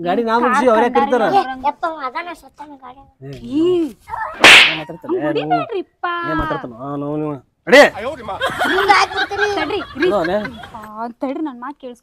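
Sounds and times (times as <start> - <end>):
sharp crack-swish: 4.4 - 4.8.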